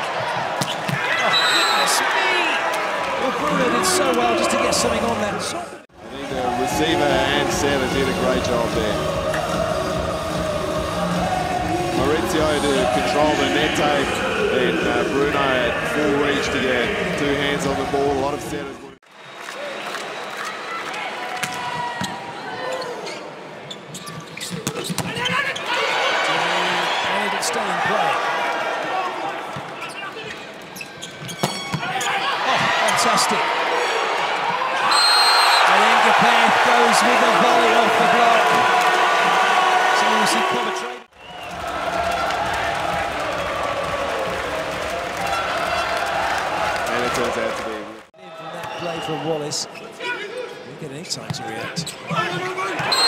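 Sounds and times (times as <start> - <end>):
crowd cheering: 0.0 - 23.2, 25.1 - 30.3, 31.8 - 50.2, 52.1 - 53.0
arena crowd noise: 0.0 - 53.0.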